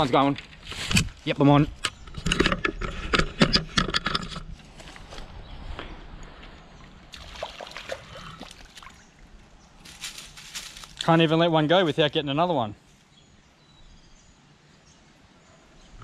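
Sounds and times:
fish splashing: 6.9s - 9.3s
scuffing and rustling: 9.8s - 11.4s.

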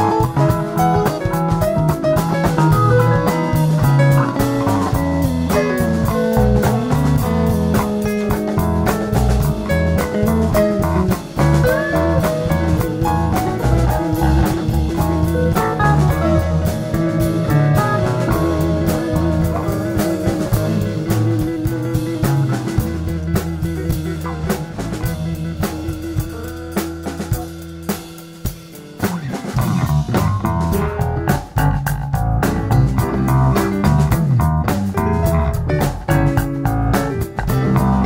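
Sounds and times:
drum kit: 0.0s - 38.0s
live rock band jamming: 0.0s - 38.0s.

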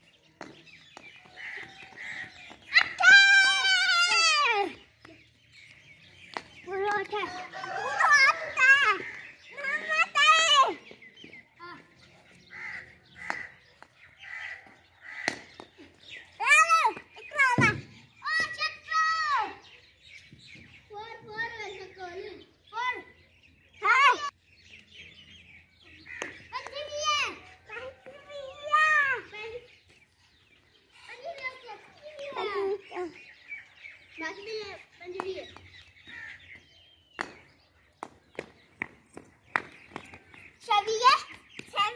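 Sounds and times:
child shouting: 2.7s - 4.8s, 6.7s - 10.8s, 16.4s - 19.6s, 23.8s - 24.3s, 26.5s - 29.4s.

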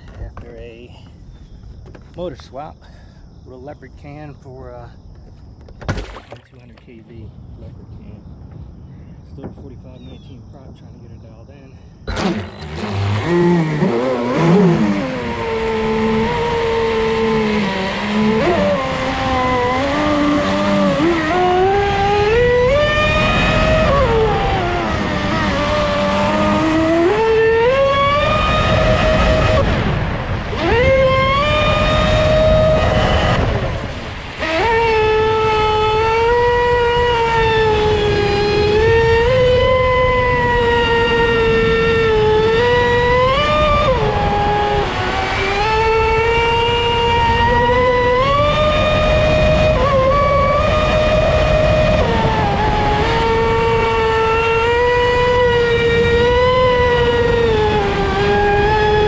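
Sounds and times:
electric motor whine: 12.1s - 59.0s.

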